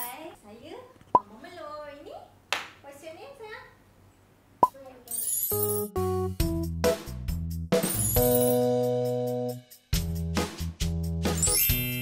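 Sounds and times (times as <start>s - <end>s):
sparkly high shimmer: 5.1s - 5.9s, 7.9s - 8.7s, 11.4s - 12.0s
bright children's music: 5.2s - 12.0s.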